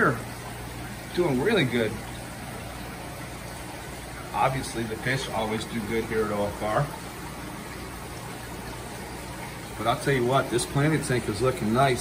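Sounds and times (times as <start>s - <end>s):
aquarium water hissing: 0.0s - 12.0s
low pump hum: 0.0s - 12.0s.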